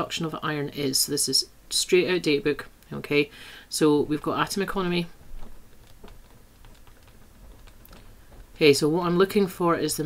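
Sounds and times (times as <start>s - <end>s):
stylus tapping on tablet screen: 4.2s - 8.9s.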